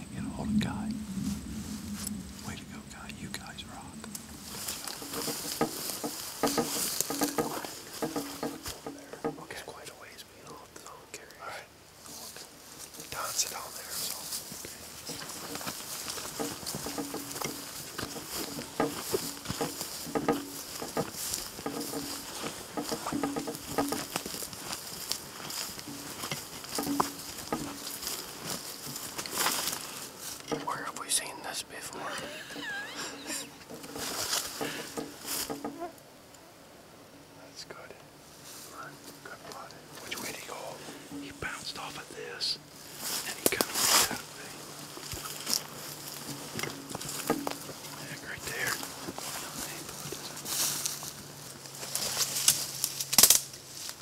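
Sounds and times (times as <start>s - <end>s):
footsteps through tall grass: 0.7s - 9.4s, 12.0s - 31.2s, 32.0s - 35.8s, 38.3s - 54.0s.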